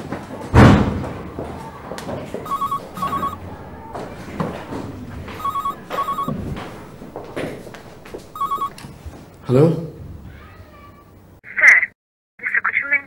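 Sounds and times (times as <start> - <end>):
heavy thump: 0.5 - 9.4
telephone trilling double ring: 2.5 - 9.3.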